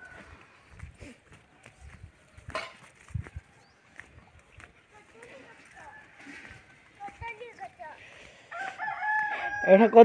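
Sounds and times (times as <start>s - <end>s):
footsteps on bare soil: 0.0s - 9.7s.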